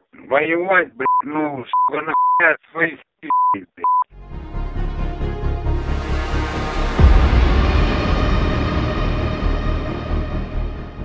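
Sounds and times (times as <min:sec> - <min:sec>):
man talking over phone line: 0:00.0 - 0:04.1
censor bleeps: 0:01.0 - 0:02.4, 0:03.3 - 0:04.1
music with deep pulsing bass: 0:04.1 - 0:11.0.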